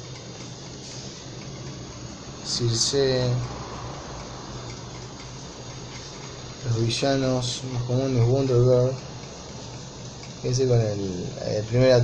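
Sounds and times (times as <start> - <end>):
electric fan running: 0.0 - 12.0.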